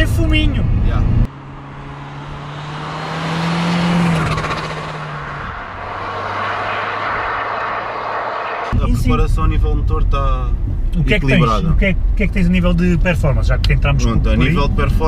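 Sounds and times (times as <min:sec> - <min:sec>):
diesel car driving past: 0:01.0 - 0:10.5.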